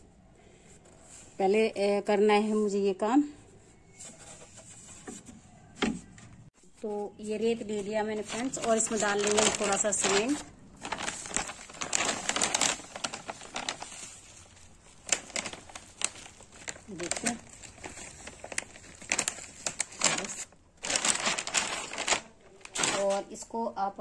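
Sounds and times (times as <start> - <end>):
plastic bag crinkling: 7.2 - 23.4.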